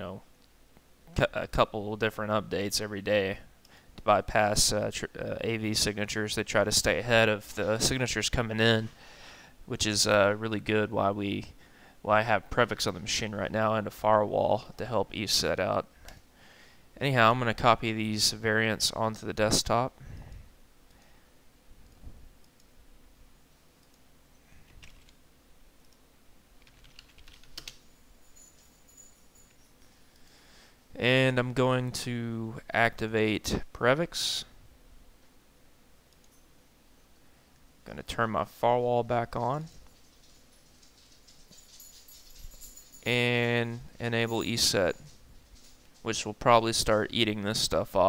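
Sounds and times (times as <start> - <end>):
faint room hiss: 0.0 - 48.0
soft clicks: 23.8 - 24.1, 25.8 - 26.0
keyboard typing: 24.7 - 25.2, 26.6 - 27.9.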